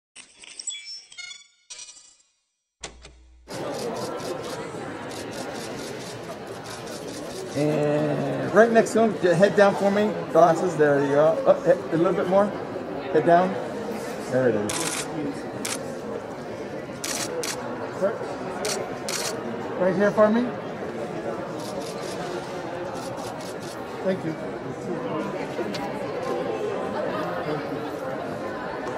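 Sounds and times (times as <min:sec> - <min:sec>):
crowd chatter: 0:03.5 - 0:28.9
hubbub of voices: 0:03.5 - 0:28.9
camera shutters clicking: 0:14.7 - 0:15.8, 0:17.0 - 0:17.6, 0:18.6 - 0:19.4
camera shutter clicks: 0:18.6 - 0:19.4.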